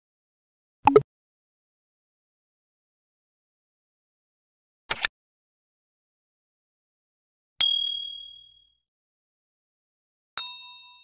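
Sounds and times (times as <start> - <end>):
bright ding chime: 10.4 - 11.0.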